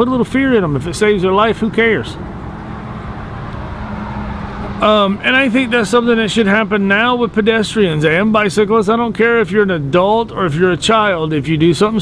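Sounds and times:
man speaking: 0.0 - 2.2, 4.8 - 12.0
road traffic rumble: 0.0 - 12.0.

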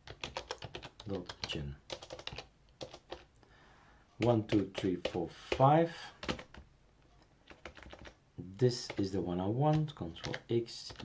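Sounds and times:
computer keyboard keystrokes: 0.0 - 3.3, 4.2 - 6.6, 7.5 - 8.2, 8.8 - 9.1, 9.7 - 11.0.

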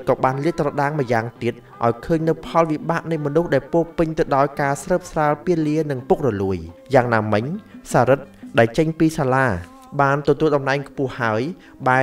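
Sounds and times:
faint music: 0.0 - 12.0
man narrating: 0.0 - 12.0.

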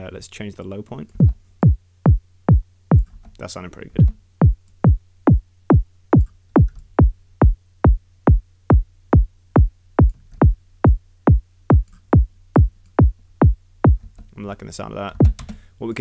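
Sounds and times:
synthesised kick drum thumps: 1.2 - 3.1, 4.0 - 14.0, 15.2 - 15.4.

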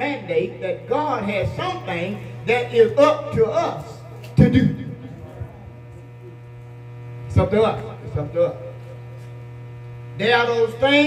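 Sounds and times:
electrical mains hum: 0.0 - 11.0.

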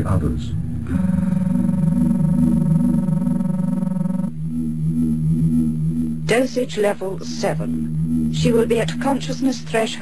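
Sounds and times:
low electronic hum: 0.0 - 10.0
electronic tone chord: 0.6 - 6.4.

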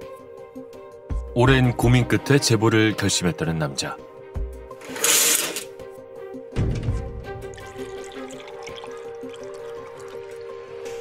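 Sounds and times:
low sustained background music: 0.0 - 11.0.

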